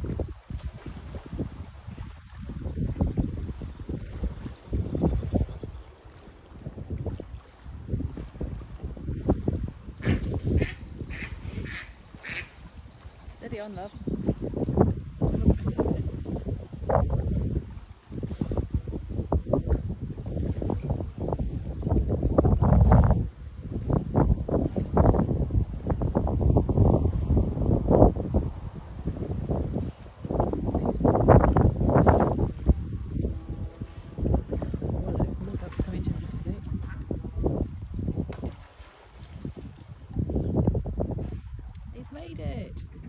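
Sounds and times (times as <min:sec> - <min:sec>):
wind buffeting microphone: 0:00.0 - 0:43.0.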